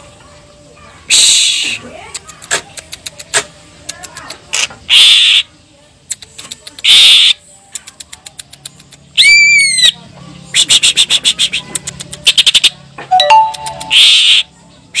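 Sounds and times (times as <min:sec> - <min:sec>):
bird harsh rasping calls: 0:04.5 - 0:05.5, 0:06.8 - 0:07.4, 0:13.8 - 0:15.0
bird dry ticking notes: 0:13.1 - 0:14.2.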